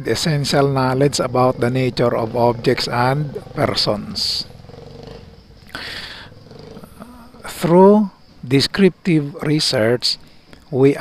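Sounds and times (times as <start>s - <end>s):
motorcycle engine idling: 0.1s - 8.4s.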